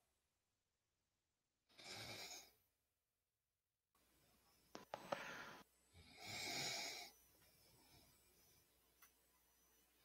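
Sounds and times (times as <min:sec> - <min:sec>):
faint room noise: 0:04.0 - 0:10.0.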